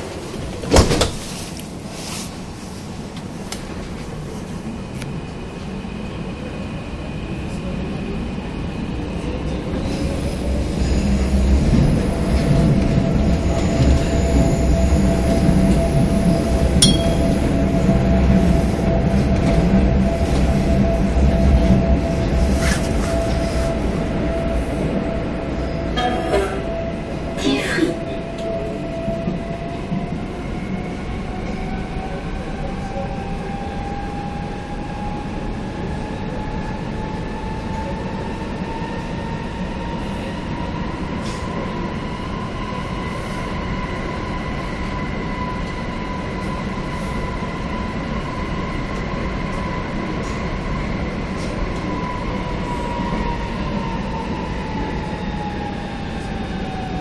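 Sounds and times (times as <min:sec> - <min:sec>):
train wheels rumbling on track: 0:00.0 - 0:57.0.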